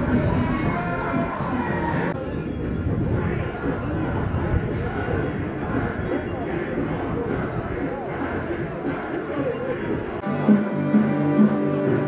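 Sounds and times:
crowd talking and calling: 0.0 - 12.0.

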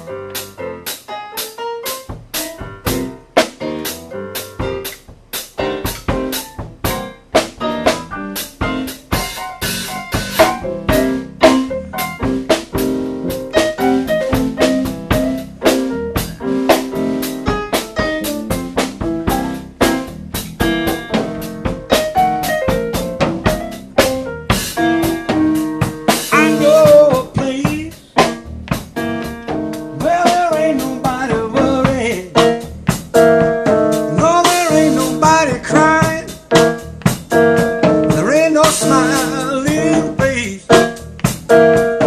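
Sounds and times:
electric keyboard playing blues: 0.0 - 42.0
drum and cymbal strikes: 0.4 - 42.0.

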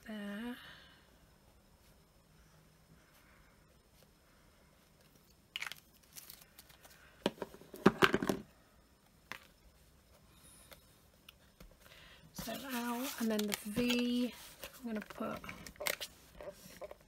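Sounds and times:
paper rustling: 12.4 - 16.9.

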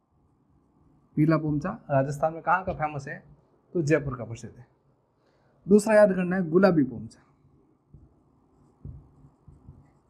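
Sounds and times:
marker writing on whiteboard: 8.0 - 10.0.

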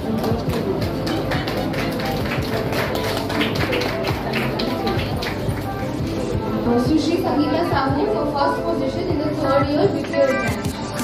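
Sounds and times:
music with percussive beat: 10.0 - 11.0.

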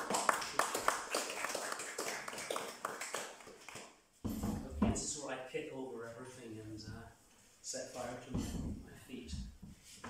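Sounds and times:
small audience applauding: 0.0 - 4.0.

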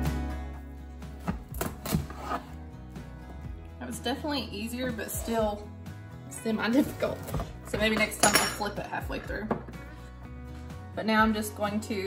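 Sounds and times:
faint background music: 0.0 - 12.0
knife cutting through squash rind: 1.2 - 2.6.

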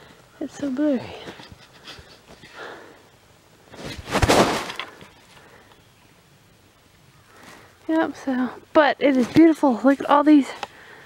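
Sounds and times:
rustling crash with thump: 3.7 - 5.0.

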